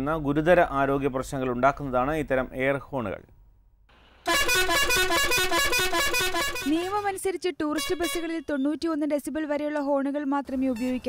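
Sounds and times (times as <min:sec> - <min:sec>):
musical air horn: 0:04.2 - 0:08.4.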